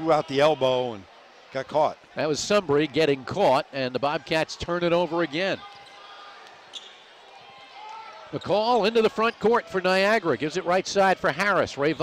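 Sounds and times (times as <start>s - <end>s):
murmur of arena noise: 0.0s - 12.0s.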